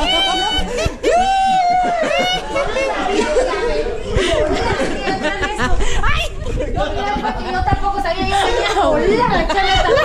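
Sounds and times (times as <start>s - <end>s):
people laughing: 0.0s - 10.0s
people talking: 0.0s - 10.0s.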